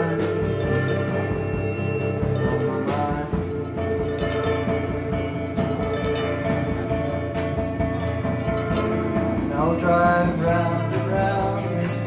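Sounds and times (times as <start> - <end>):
drum kit: 0.0 - 12.0
electric guitar: 0.0 - 12.0.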